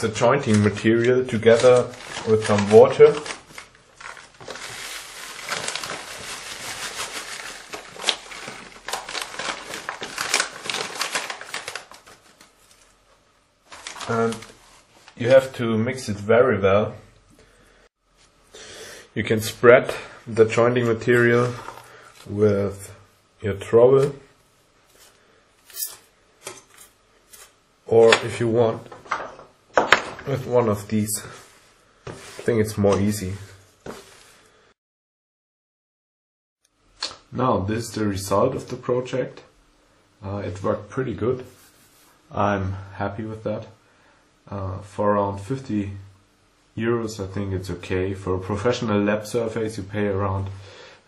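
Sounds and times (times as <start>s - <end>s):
powder bag crinkling: 0.4s - 13.0s, 13.6s - 15.3s, 21.1s - 22.3s.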